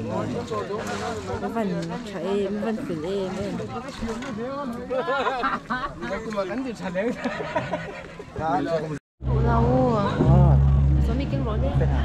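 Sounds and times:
voices in a hall: 0.0 - 7.2
loud low bass drone: 9.2 - 12.0.

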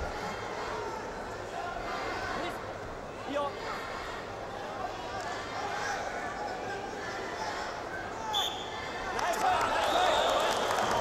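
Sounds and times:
arena crowd voices: 0.0 - 11.0
referee whistle blast: 8.3 - 8.7.

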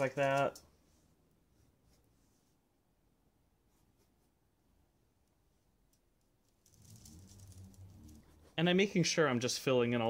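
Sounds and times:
faint low hum: 0.6 - 9.4
painting tools rattling: 6.2 - 8.6.

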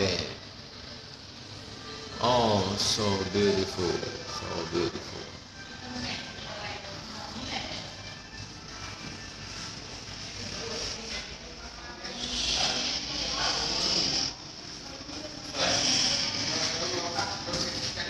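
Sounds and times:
indistinct voices: 1.6 - 18.0.

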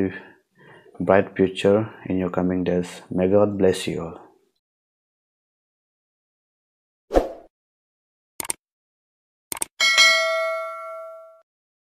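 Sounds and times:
bright bell chime: 9.8 - 11.4.

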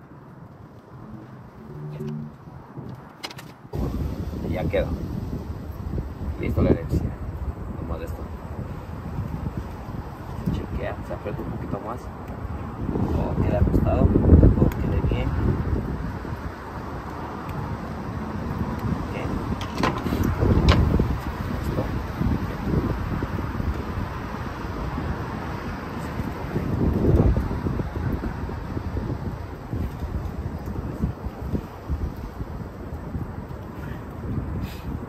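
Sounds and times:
wind rumbling on microphone: 0.0 - 35.0.

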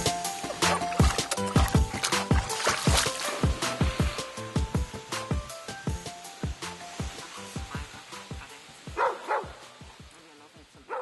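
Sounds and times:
dog barking: 8.9 - 9.6.

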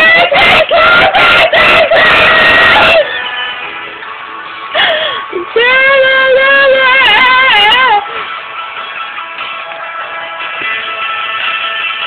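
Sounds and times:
girl singing loudly: 0.0 - 3.1, 5.4 - 8.1.

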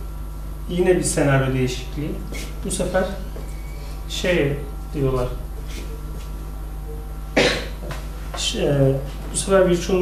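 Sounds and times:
low electrical hum: 0.0 - 10.0
person coughing: 7.4 - 7.8.

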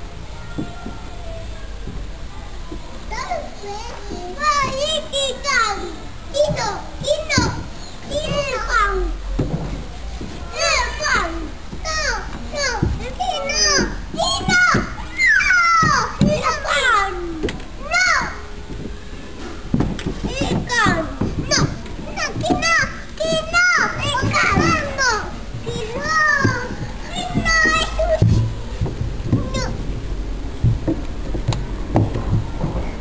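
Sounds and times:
toddlers calling out and babbling: 0.0 - 30.0
children playing: 0.0 - 33.0.

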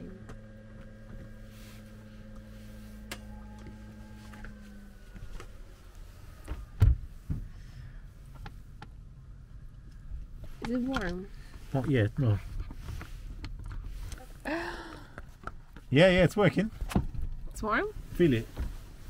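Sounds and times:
heater humming: 0.0 - 6.6.

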